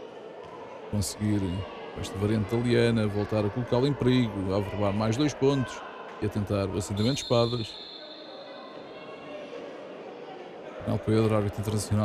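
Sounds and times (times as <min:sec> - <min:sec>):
faint hall room noise: 0:00.0 - 0:12.0
referee's whistle: 0:06.9 - 0:08.9.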